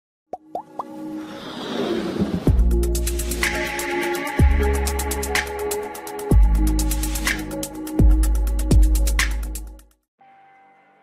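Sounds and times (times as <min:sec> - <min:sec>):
whooshing riser with musical tone: 0:01.0 - 0:04.8.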